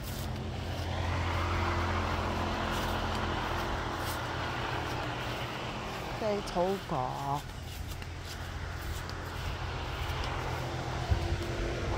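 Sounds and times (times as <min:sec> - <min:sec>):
motor engine humming: 0:00.0 - 0:11.9.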